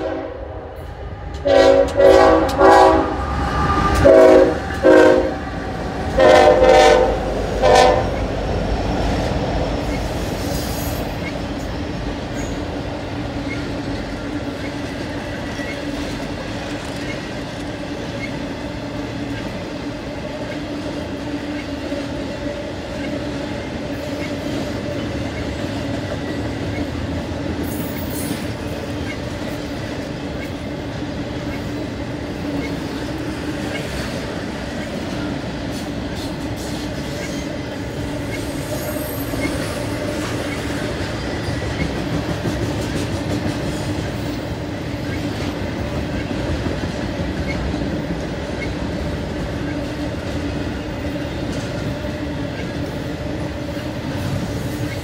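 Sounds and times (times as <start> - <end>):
locomotive air horn blasts: 0.0 - 0.8, 1.4 - 8.2
train cars rumbling on rails: 0.0 - 55.0.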